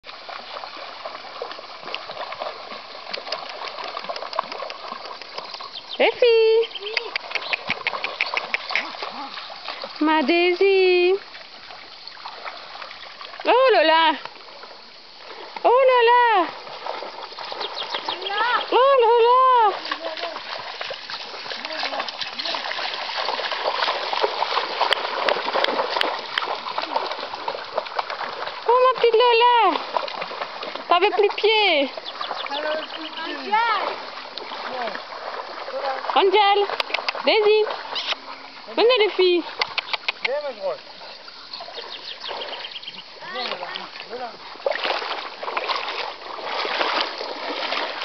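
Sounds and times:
dogs splashing through water: 0.0 - 48.0
river water rushing: 0.1 - 48.0.

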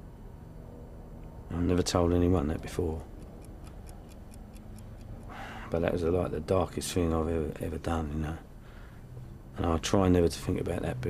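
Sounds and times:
clock ticking: 3.1 - 5.3.

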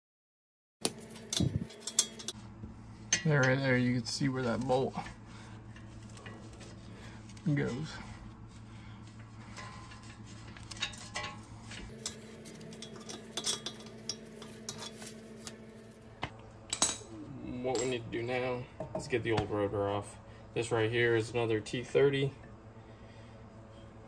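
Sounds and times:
low hum: 0.8 - 24.0
metal tools clinking: 0.9 - 2.4, 3.1 - 5.1, 9.4 - 15.8.

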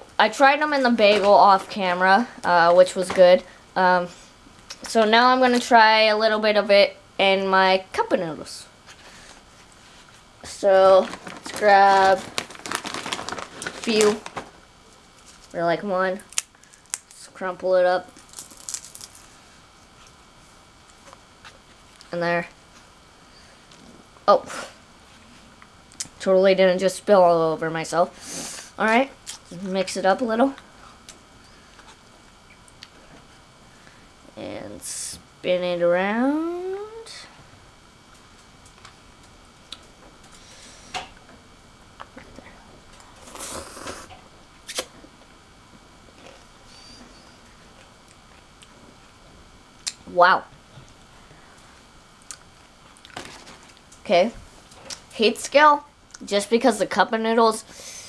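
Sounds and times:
person slurping noodles: 43.2 - 44.1.

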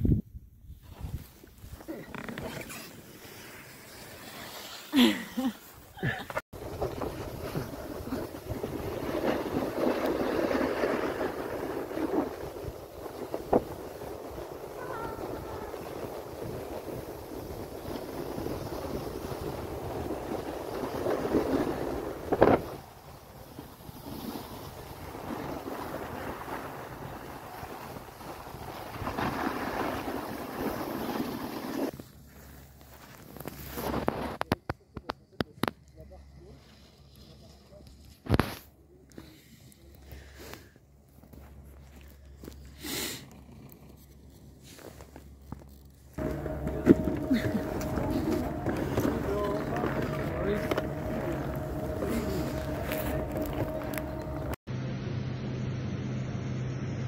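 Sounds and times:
wind rushing on microphone: 0.0 - 1.8
skis scraping over snow: 0.8 - 34.4, 40.2 - 54.6.

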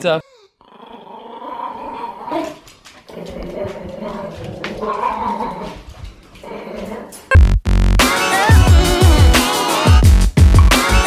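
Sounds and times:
small dog growling: 0.6 - 7.3
electronic music with heavy bass: 7.3 - 11.0.

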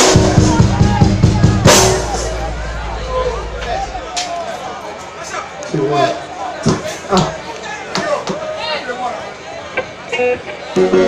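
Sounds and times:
band holding a chord: 0.0 - 4.4.

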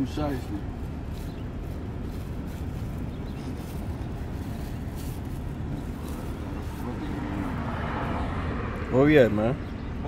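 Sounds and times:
vehicle cabin rumble: 0.0 - 10.0.

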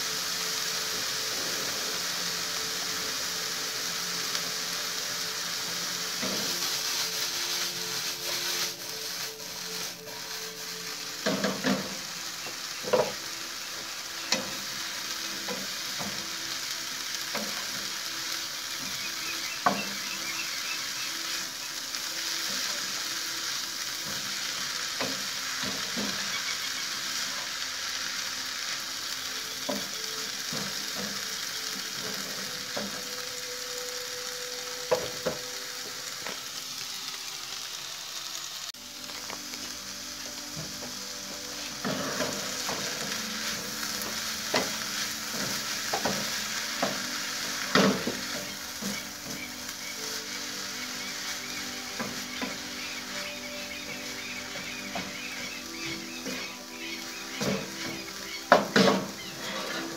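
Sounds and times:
vegetables sizzling in frying pan: 0.0 - 59.9
wooden spatula scraping pan: 57.5 - 59.9.

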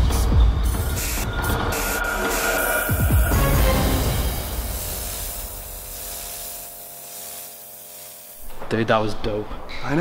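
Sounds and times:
pressure washer spraying water: 0.7 - 8.5.

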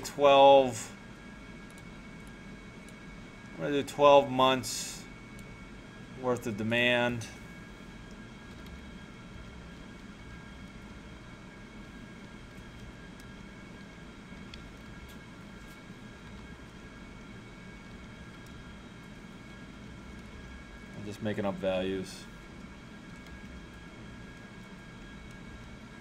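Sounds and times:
computer hum and hiss: 0.0 - 26.0.

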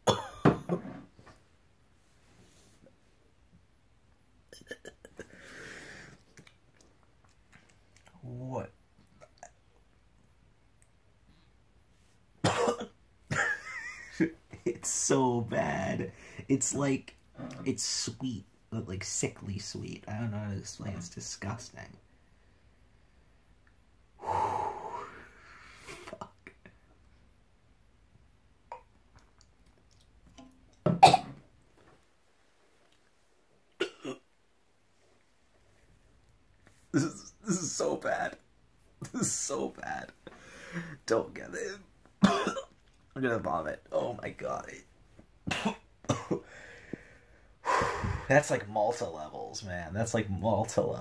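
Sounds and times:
man coughing sharply: 0.1 - 0.8, 12.4 - 13.6, 31.0 - 31.3, 33.8 - 34.2, 42.2 - 42.7, 45.5 - 46.4
man laughing: 13.3 - 14.7.

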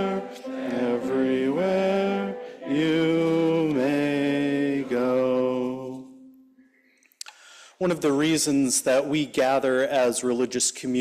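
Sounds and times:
voices singing a hymn: 0.0 - 6.4.

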